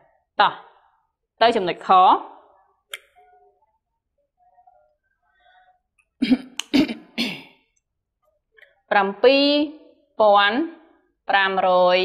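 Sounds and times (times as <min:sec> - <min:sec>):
woman coughing: 0:06.2 - 0:07.7.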